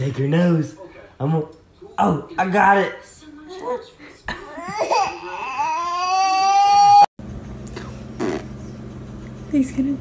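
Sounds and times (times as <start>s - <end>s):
toddler crying: 4.4s - 7.1s.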